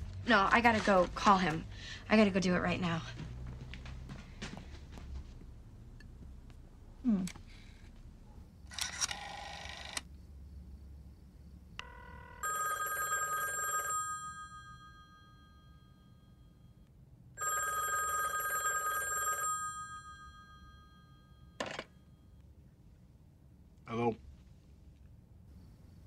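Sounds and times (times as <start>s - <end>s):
telephone bell ringing: 11.8s - 16.6s, 17.4s - 21.6s.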